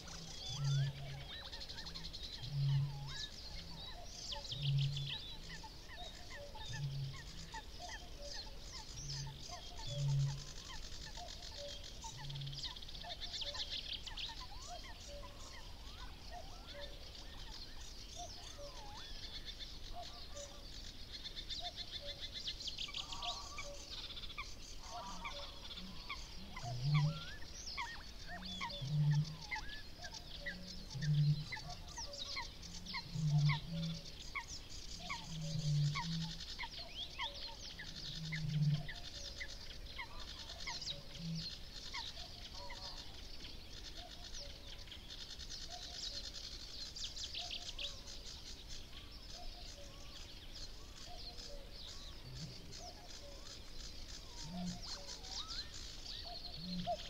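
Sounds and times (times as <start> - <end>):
songbirds chirping and trilling: 0.0 - 57.0.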